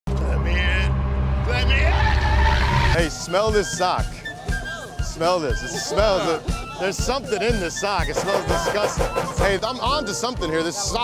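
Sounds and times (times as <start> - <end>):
low rumble: 0.1 - 3.0.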